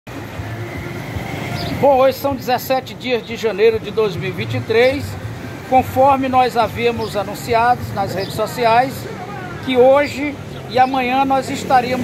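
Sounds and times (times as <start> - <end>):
road traffic rumble: 0.1 - 12.0
man speaking: 1.8 - 12.0.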